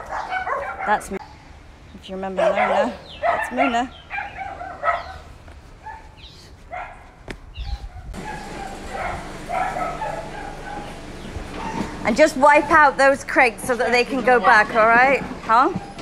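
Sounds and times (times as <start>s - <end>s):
dogs barking: 0.0s - 1.3s, 2.3s - 16.0s.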